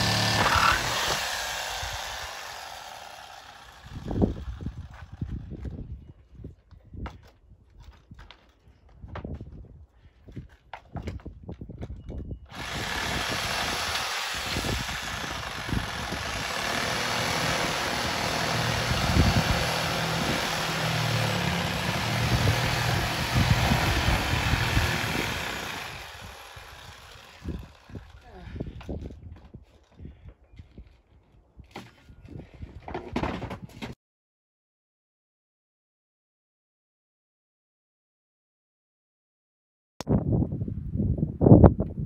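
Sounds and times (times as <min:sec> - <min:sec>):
power saw cutting: 0:00.0 - 0:04.9, 0:12.5 - 0:28.4.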